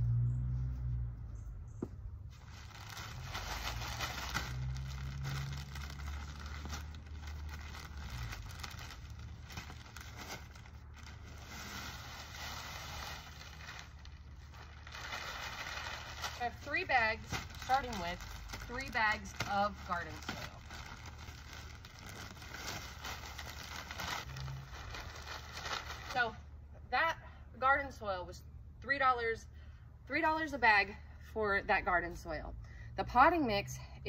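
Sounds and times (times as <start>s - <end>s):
plastic bag crinkling: 2.4s - 26.2s.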